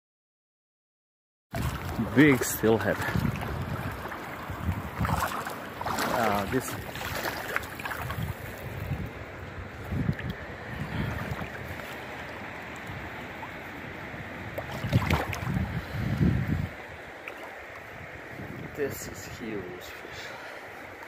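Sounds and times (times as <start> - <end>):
stream running over rocks: 1.6 - 21.0.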